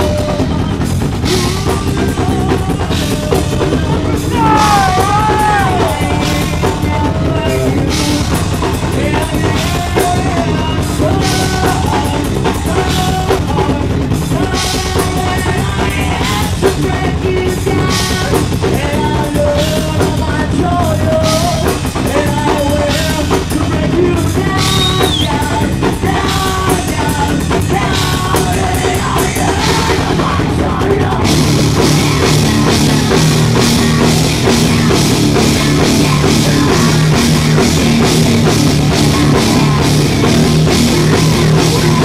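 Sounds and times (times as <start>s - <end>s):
drum kit with bass drum: 0.0s - 42.0s
metal band playing: 0.0s - 42.0s
person singing: 0.0s - 42.0s.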